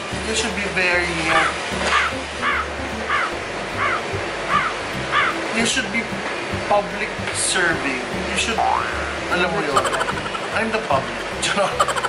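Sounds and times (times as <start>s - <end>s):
crow cawing: 1.4s - 5.4s.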